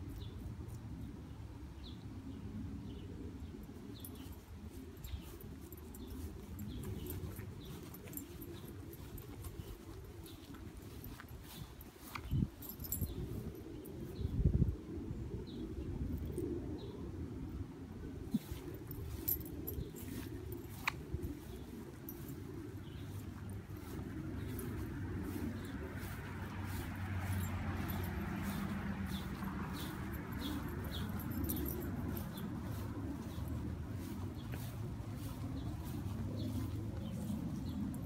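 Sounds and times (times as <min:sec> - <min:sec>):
dog collar tags clinking: 0:03.8 - 0:14.1, 0:18.4 - 0:38.0.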